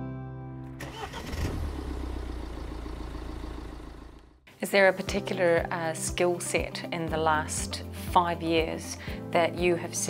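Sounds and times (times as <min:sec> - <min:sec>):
car engine starting and running: 0:00.7 - 0:04.5.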